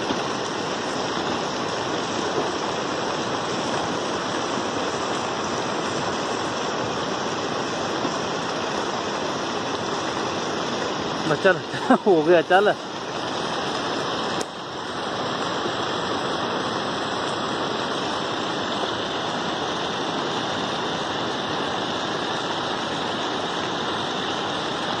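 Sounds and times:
water rushing: 0.0s - 25.0s.

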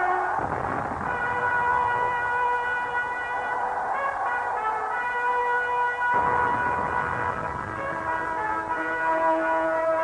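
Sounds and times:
brass music held note: 0.0s - 10.0s.

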